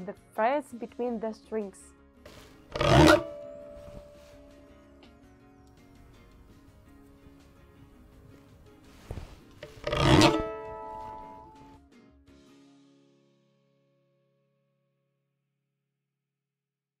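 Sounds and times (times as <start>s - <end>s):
pick scraping across frets: 2.3s - 4.7s, 8.9s - 11.7s
open strings ringing: 2.7s - 4.8s, 9.6s - 11.7s.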